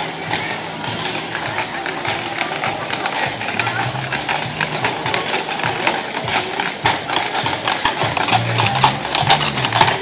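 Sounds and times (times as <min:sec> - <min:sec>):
horse hooves clip-clopping on pavement: 0:00.0 - 0:10.0.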